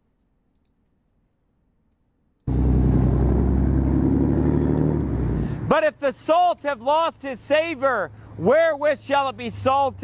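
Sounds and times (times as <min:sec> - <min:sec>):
vehicle engine rumble: 0:02.5 - 0:06.2
street traffic rumble: 0:02.5 - 0:10.0.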